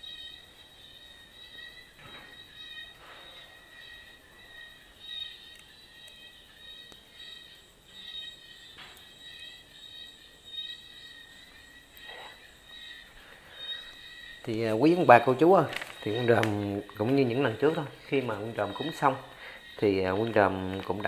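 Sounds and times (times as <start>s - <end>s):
insects chirring: 0.0s - 21.0s.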